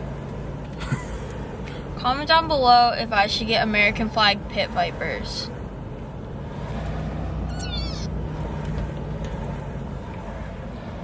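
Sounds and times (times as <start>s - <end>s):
car road and engine rumble: 0.0s - 11.0s
high wavering squeal: 7.5s - 8.2s.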